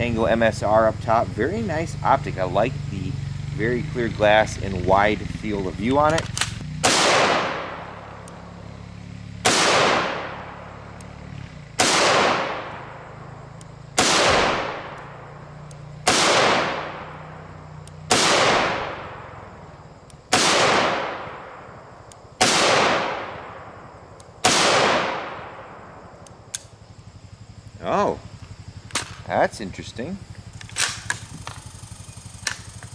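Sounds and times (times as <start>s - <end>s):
rifle shots echoing: 5.9s - 11.0s, 11.7s - 19.7s, 20.3s - 26.6s.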